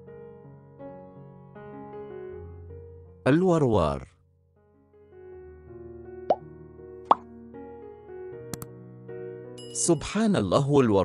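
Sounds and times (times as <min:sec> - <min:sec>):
soft keyboard music: 0:00.0 - 0:03.8, 0:04.7 - 0:10.6.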